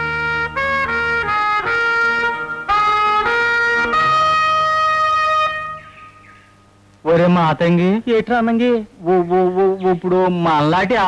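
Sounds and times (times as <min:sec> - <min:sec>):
trumpet holding long note: 0:00.0 - 0:06.2.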